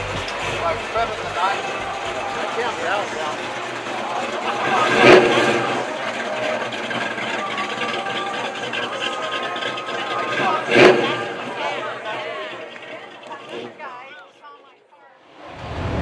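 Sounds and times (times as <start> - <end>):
car engine running: 0.0 - 13.8
crowd chatter: 0.0 - 16.0.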